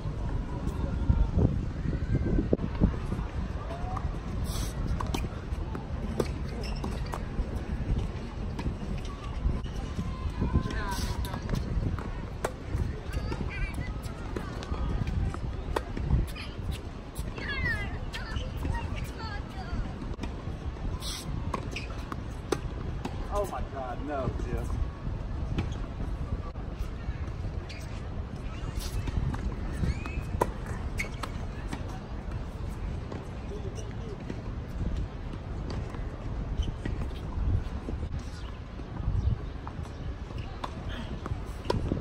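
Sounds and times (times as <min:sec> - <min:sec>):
wind rumble on microphone: 0:00.0 - 0:42.0.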